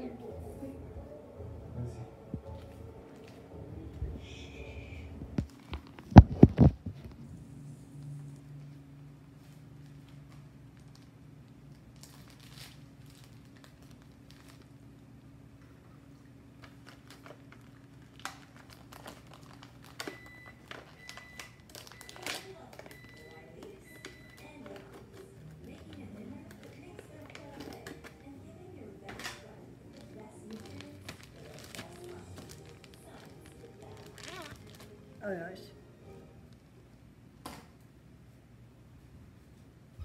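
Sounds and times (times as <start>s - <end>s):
faint voices: 0.0s - 5.5s, 22.4s - 35.2s
appliance electrical hum: 0.0s - 40.0s.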